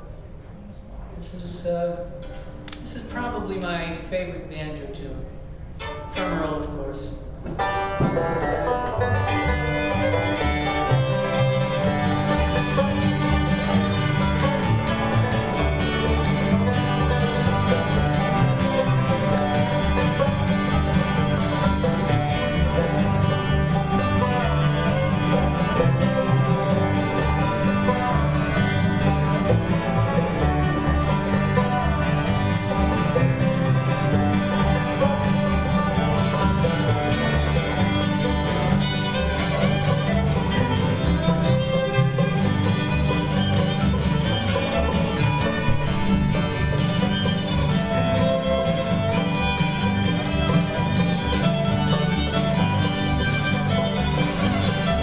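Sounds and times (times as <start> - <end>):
acoustic guitars: 4.9 - 55.0
banjo rolls: 4.9 - 55.0
fiddle: 5.7 - 55.0
upright bass: 5.8 - 55.0.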